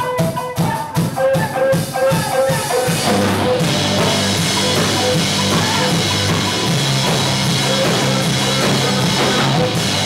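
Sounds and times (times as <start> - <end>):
distorted electric guitars: 0.0 - 10.0
drum kit beat: 0.0 - 10.0.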